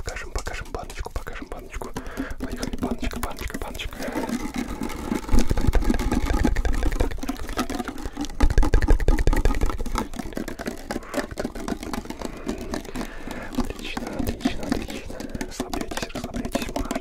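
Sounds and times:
tapping on metal tin can: 1.9s - 17.0s.

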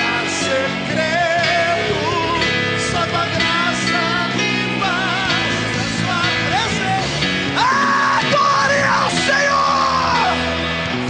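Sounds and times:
worship band playing rock music: 0.0s - 11.0s
person shouting long high notes: 7.6s - 10.4s.

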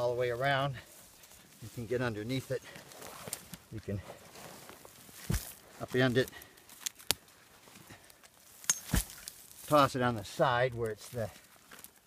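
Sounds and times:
dirt crumbling: 0.0s - 12.0s.

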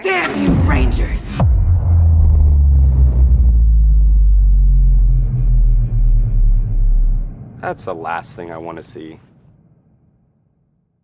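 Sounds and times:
deep bass rumble: 0.5s - 8.6s.

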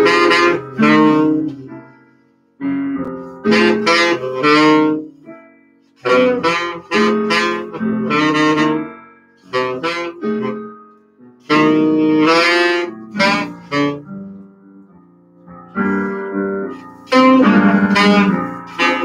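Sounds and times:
saxophone playing bluesy jazz melody: 0.0s - 1.8s, 3.2s - 5.4s, 6.0s - 10.8s, 11.4s - 14.5s, 15.7s - 19.0s
piano accompaniment: 0.0s - 19.0s.

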